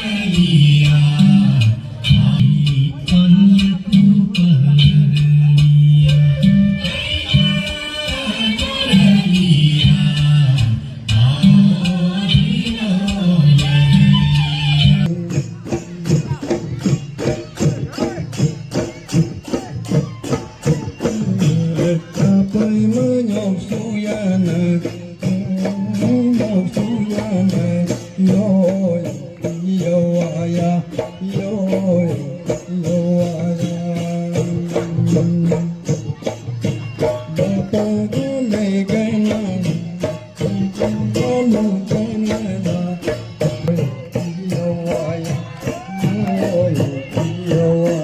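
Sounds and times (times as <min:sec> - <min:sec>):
person singing folk melody: 0:00.0 - 0:48.0
steady percussion beat: 0:00.0 - 0:48.0.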